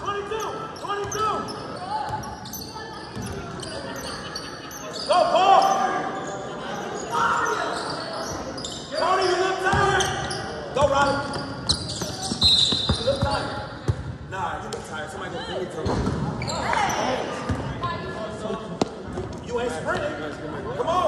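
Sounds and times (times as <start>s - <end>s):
sneakers squeaking: 0.0s - 14.2s, 15.7s - 17.9s.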